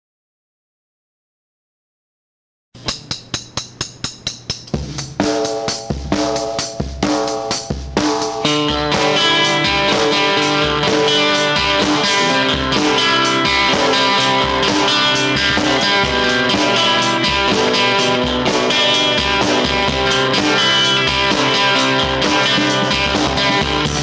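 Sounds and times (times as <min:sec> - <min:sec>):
rock music: 0:04.7 - 0:24.0.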